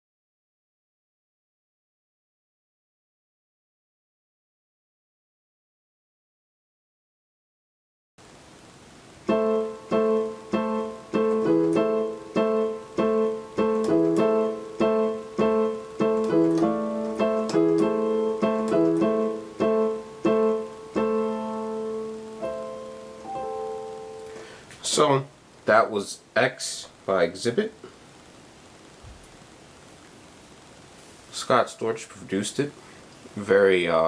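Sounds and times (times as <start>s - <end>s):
piano chords: 9.2s - 24.6s.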